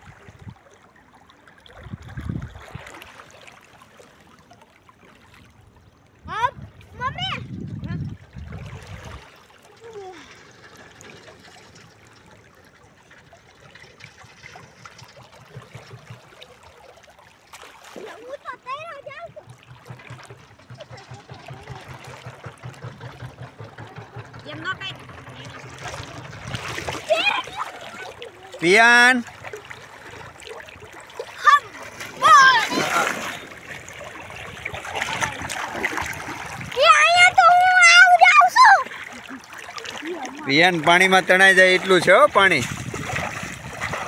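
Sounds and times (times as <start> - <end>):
water splashes: 0.0 - 44.0
river water trickling over stones: 8.3 - 18.6, 19.4 - 44.0.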